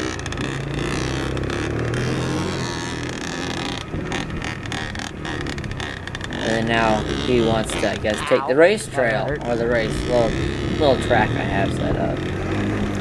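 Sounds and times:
dirt bike engines at low revs: 0:00.0 - 0:13.0.

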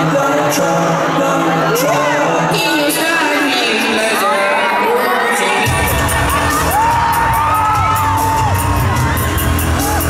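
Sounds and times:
crowd screaming and whooping: 0:00.9 - 0:10.0
bass-heavy music with steady beat: 0:05.6 - 0:10.0.

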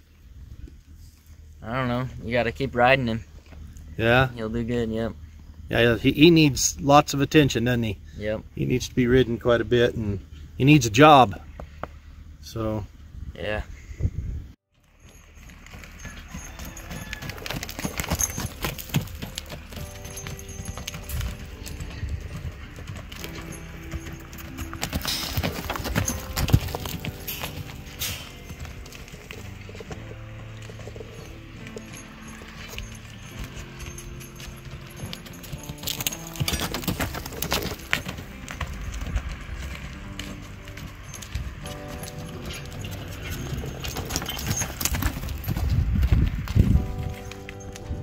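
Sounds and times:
horse hoofbeats on soft dirt: 0:14.8 - 0:48.0
background music: 0:16.4 - 0:48.0.

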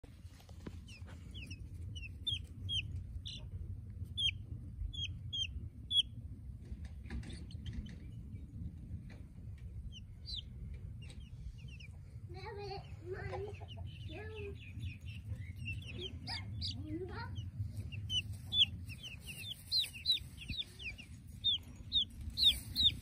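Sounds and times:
low rumble: 0:00.0 - 0:23.0
chicks peeping: 0:00.2 - 0:23.0.

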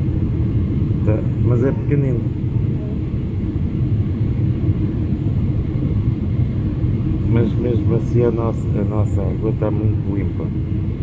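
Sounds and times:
airliner cabin rumble: 0:00.0 - 0:11.0.

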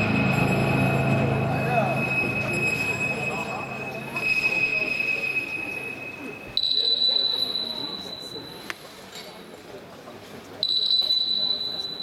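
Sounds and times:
high electronic tone: 0:00.0 - 0:08.6
crowd chatter: 0:00.0 - 0:12.0.

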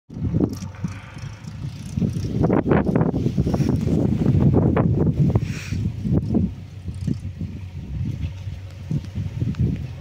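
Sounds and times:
wind buffeting microphone: 0:00.1 - 0:10.0.

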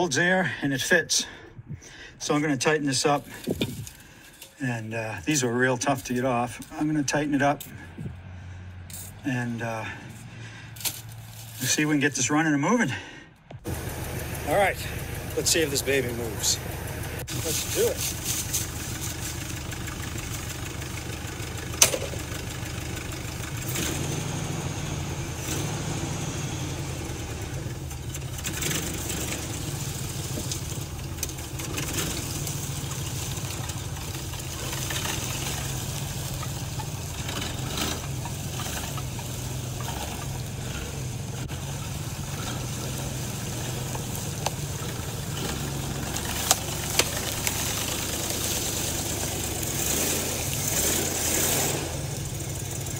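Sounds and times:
pickup engine idling: 0:00.0 - 0:12.0, 0:12.7 - 0:52.9.

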